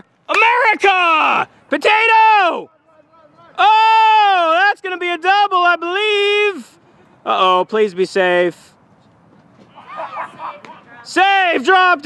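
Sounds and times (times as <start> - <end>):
distant voices calling out: 0.0 - 12.0.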